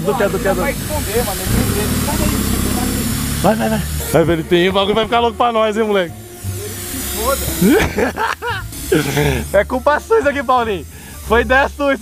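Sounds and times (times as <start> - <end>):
people laughing and exclaiming: 0.0 - 5.3, 7.4 - 9.8
air hissing from tyre valve: 0.0 - 12.0.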